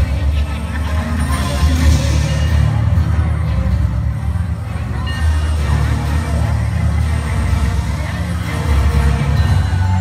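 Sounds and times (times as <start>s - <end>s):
loud music with pulsing bass: 0.0s - 10.0s
many people talking: 0.0s - 10.0s.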